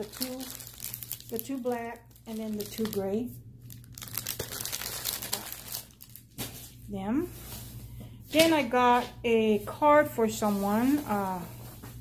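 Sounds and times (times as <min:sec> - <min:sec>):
plastic wrapping crinkling: 0:00.0 - 0:06.5.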